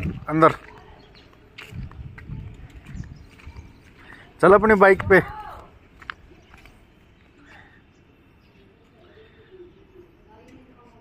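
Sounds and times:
footsteps on brick paving: 0.0 - 7.8.

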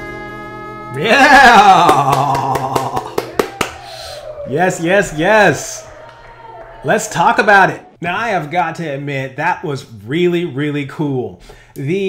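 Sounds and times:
sharp hand claps: 1.4 - 7.4.

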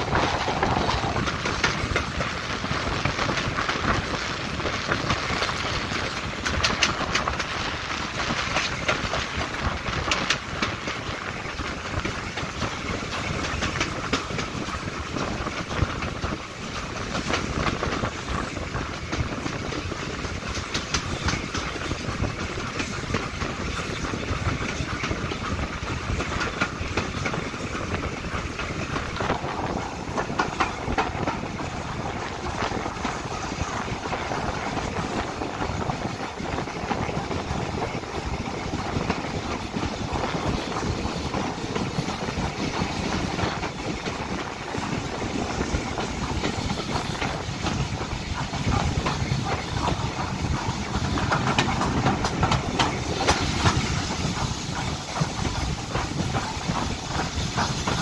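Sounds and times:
steam train running: 0.0 - 58.0
wheels clicking over rails: 0.0 - 58.0.

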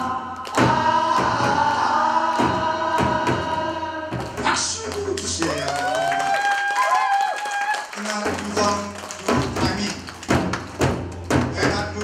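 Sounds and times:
drums struck in sharp hits: 0.0 - 4.9, 8.3 - 12.0
backing music: 0.0 - 5.6, 8.0 - 12.0.

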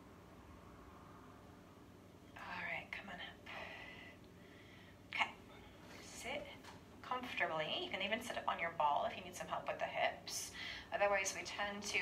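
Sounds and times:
woman whispering: 2.4 - 4.0.

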